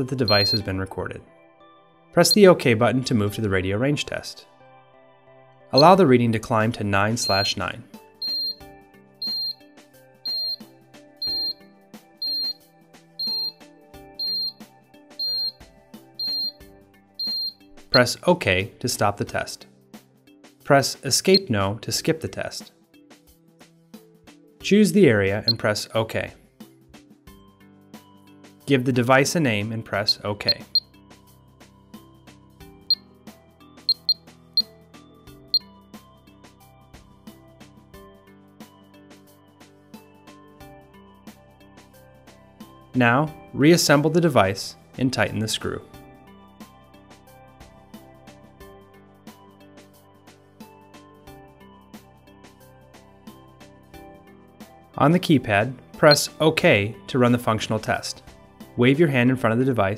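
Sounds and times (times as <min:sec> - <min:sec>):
alarm keypad beeping: 0:00.2 - 0:00.7, 0:05.8 - 0:06.0, 0:07.2 - 0:07.6, 0:08.2 - 0:08.6, 0:09.2 - 0:09.6, 0:10.3 - 0:11.6, 0:12.2 - 0:12.6, 0:13.2 - 0:13.6, 0:14.2 - 0:14.6, 0:15.2 - 0:15.6, 0:16.2 - 0:16.6, 0:17.2 - 0:17.6, 0:30.0 - 0:30.8, 0:33.9 - 0:34.2.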